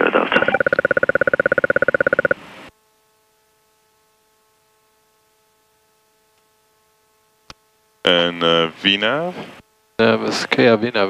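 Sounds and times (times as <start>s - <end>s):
faint steady hum: 0.0s - 11.0s
rapidly pulsing electronic beep: 0.3s - 2.4s.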